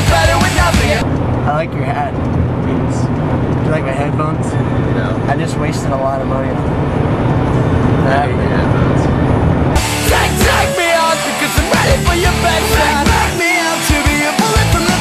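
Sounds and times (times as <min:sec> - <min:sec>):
car engine and road drone: 0:00.0 - 0:15.0
indistinct voices talking: 0:00.0 - 0:15.0.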